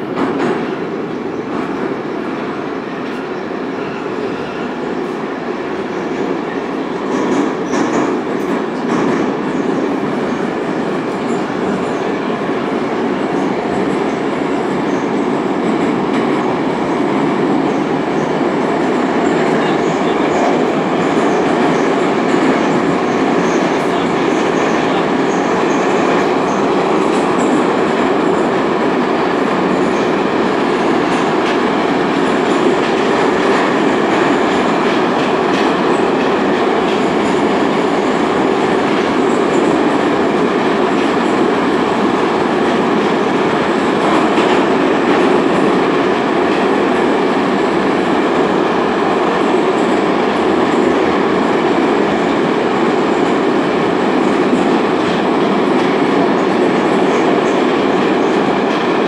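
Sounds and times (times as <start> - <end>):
metro train rumbling in tunnel: 0.0 - 59.0.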